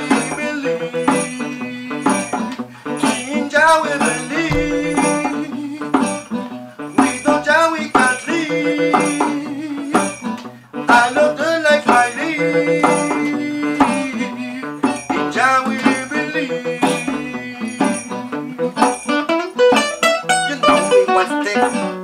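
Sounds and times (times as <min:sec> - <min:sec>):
acoustic guitar strummed: 0:00.0 - 0:22.0.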